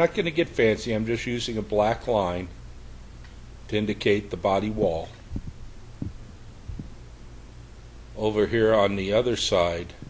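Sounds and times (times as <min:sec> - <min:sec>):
low background hum: 0:00.0 - 0:10.0
soft thumps: 0:05.3 - 0:07.0.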